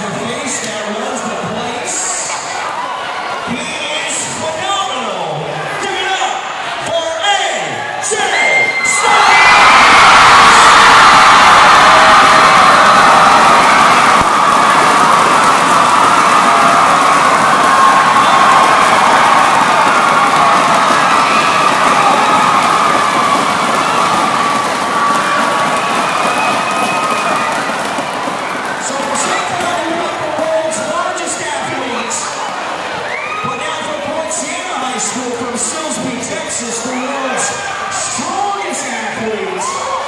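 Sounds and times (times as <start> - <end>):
crowd cheering and screaming: 7.8 - 34.2, 36.7 - 40.0.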